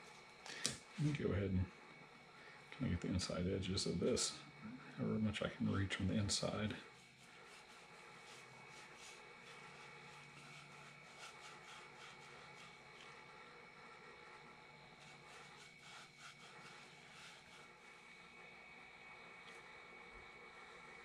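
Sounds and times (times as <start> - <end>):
faint high hum: 0.0 - 21.0.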